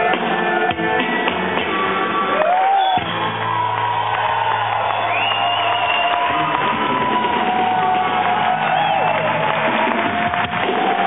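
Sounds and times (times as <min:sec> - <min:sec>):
audience cheering and whistling: 0:00.0 - 0:11.0.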